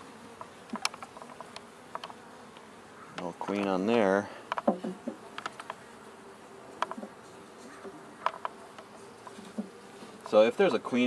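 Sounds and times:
honeybees buzzing: 0.0s - 11.0s
sharp clicks: 5.3s - 5.8s.

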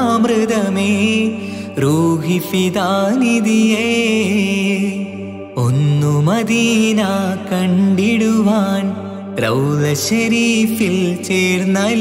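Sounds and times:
devotional song: 0.0s - 12.0s.

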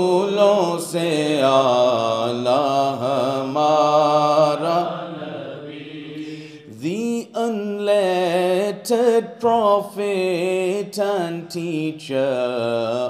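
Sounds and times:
man singing devotional song: 0.0s - 13.0s.

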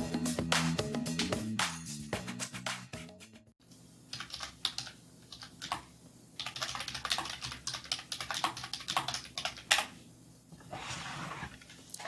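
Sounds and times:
typing on computer keyboard: 4.1s - 9.9s.

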